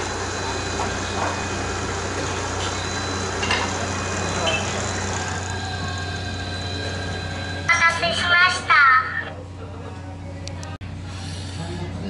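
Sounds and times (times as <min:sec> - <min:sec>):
thin high whine: 0:00.0 - 0:09.4
low mechanical hum: 0:00.0 - 0:12.0.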